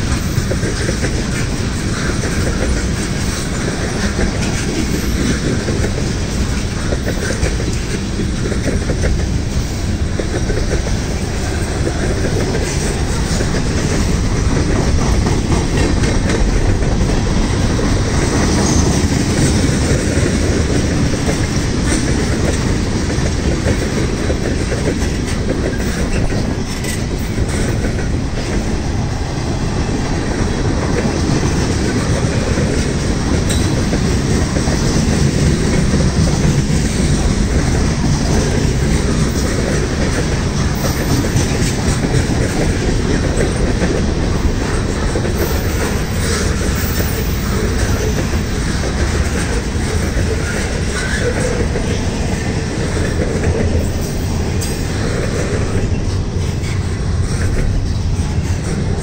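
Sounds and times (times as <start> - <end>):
train wheels rumbling on rail: 0.0 - 59.0
wheels clicking over rail joints: 0.0 - 59.0.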